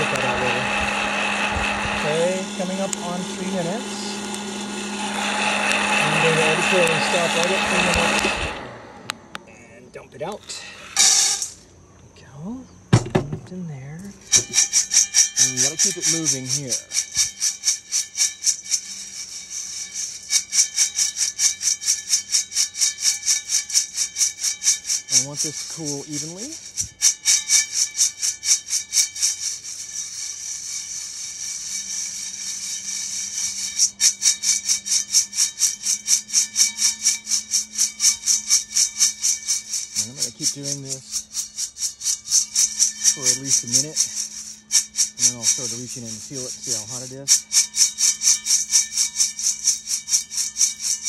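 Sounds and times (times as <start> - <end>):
coffee beans rattling in metal colander: 0.0 - 8.5, 10.4 - 11.6, 14.0 - 51.0.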